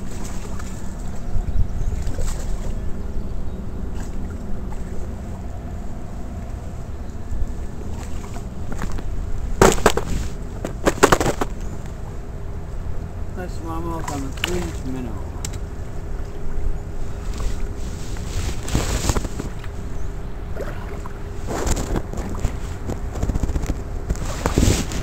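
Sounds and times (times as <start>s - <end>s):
wind rumble on microphone: 0.0s - 25.0s.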